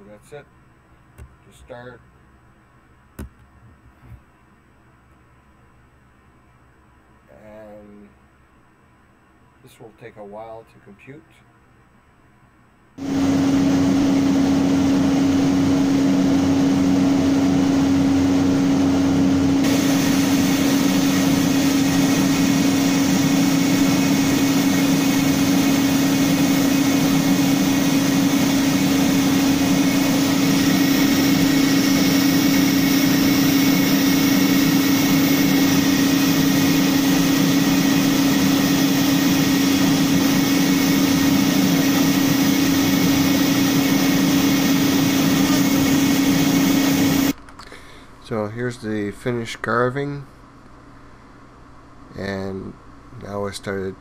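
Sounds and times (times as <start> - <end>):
router spindle hum: 13.0 - 47.4.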